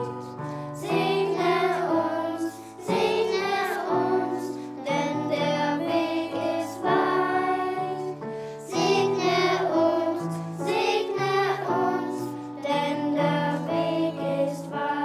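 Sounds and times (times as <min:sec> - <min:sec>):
children's choir singing: 0:00.0 - 0:15.0
keyboard accompaniment: 0:00.0 - 0:15.0.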